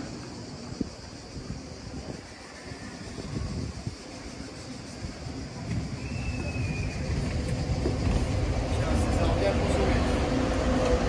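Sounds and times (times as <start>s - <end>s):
bus engine rumble: 3.1s - 11.0s.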